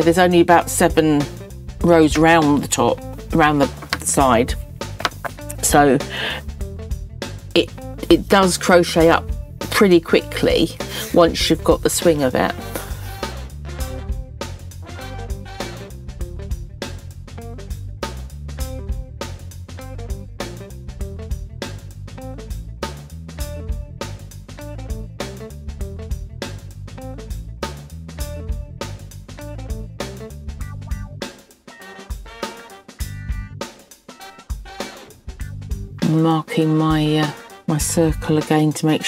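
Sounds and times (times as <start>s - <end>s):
guitar and drum music: 0.0s - 39.0s.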